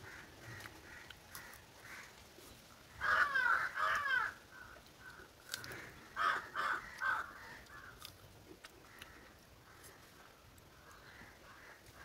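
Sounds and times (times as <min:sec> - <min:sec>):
crow cawing: 0:00.0 - 0:02.2, 0:02.9 - 0:08.1, 0:08.8 - 0:10.2, 0:10.8 - 0:12.0.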